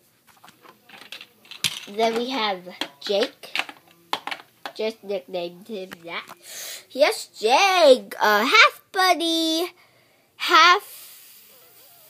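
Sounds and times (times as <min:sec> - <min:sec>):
small hard objects clicking: 0:00.7 - 0:04.8.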